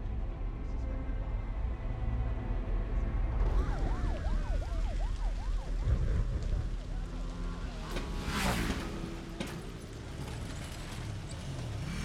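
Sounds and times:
siren wailing: 3.0s - 6.9s
siren in fast yelp: 3.4s - 6.1s.

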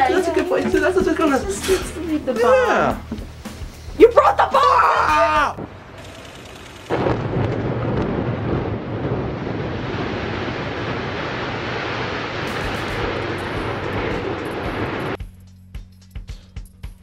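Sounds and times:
building collapsing rumble: 5.6s - 15.2s.

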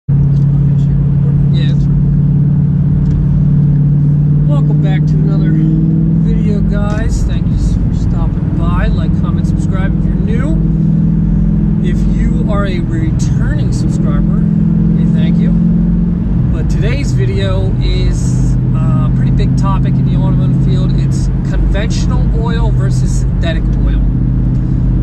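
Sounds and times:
car engine and road noise: 0.1s - 25.0s
man talking: 0.3s - 1.9s, 4.4s - 10.7s, 11.8s - 15.6s, 16.5s - 24.1s.

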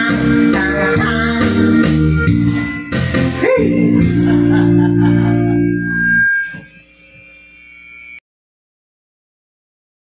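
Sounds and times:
loud music with low tones: 0.0s - 7.0s.

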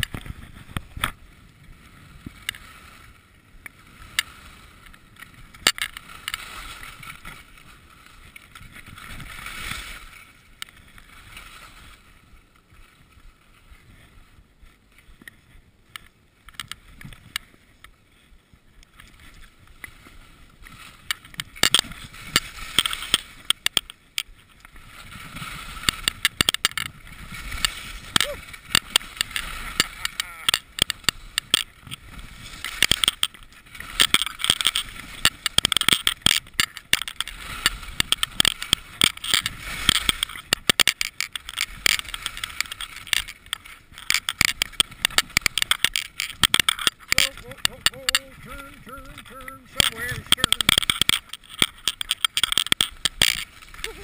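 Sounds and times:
sharp clicks and knocks: 5.6s - 6.4s, 21.1s - 24.3s, 25.8s - 27.0s, 27.6s - 32.0s, 32.6s - 53.9s
skis hissing over snow: 27.1s - 31.4s, 53.4s - 54.0s.

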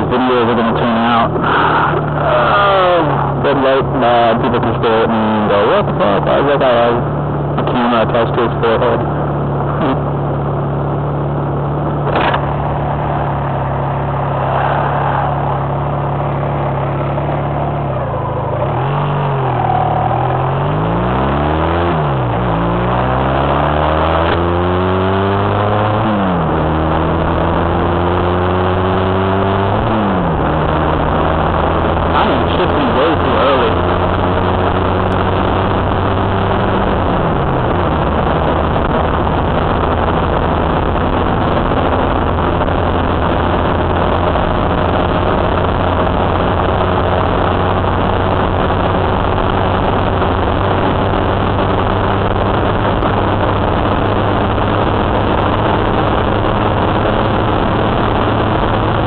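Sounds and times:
motorcycle engine accelerating: 0.0s - 59.0s
wind noise: 0.0s - 59.0s.

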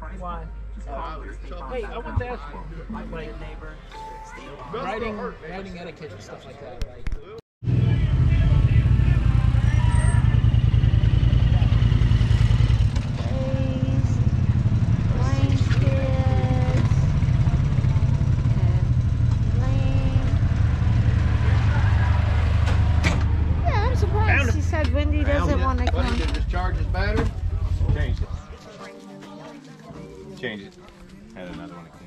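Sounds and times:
vehicle engine idling: 7.7s - 28.6s.

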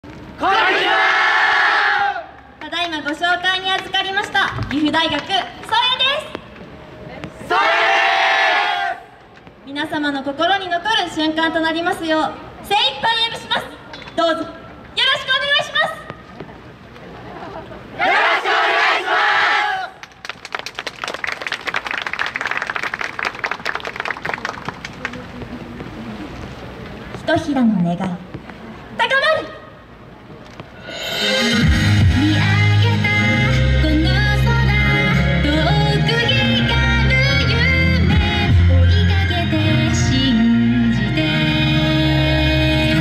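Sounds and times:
group shouting in unison: 0.4s - 2.3s, 7.5s - 9.0s, 18.0s - 19.9s.

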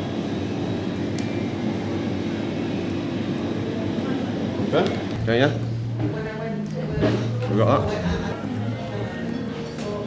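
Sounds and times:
machinery hum and hiss: 0.0s - 8.6s.

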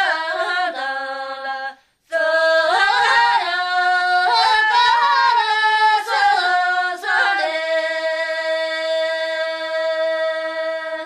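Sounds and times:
person singing unaccompanied folk song: 0.0s - 11.0s.

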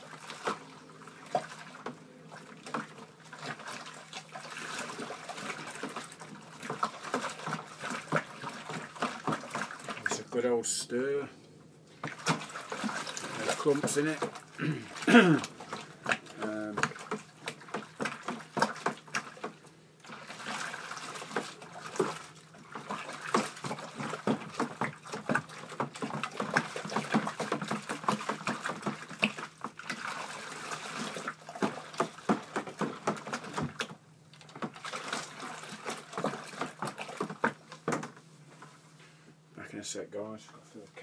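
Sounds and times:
spoon stirring and sloshing water: 0.0s - 10.4s, 12.0s - 38.2s.

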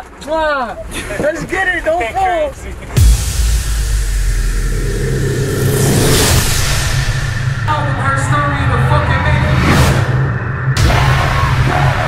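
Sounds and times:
vehicle road noise: 0.8s - 12.0s.

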